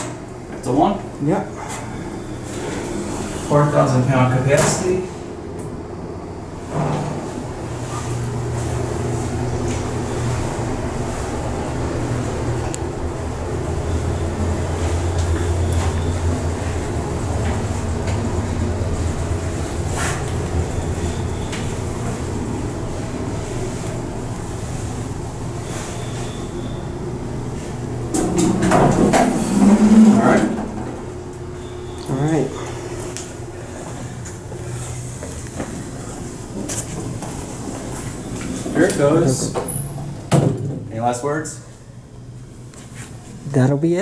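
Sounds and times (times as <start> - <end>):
elevator hum and rumble: 0.0 - 44.0.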